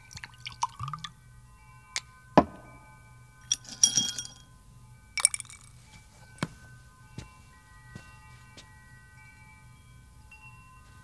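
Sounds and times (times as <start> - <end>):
liquid pouring into a glass: 0.0 - 1.1, 5.2 - 5.6
glassware clinking: 2.4 - 4.5, 5.2 - 5.7.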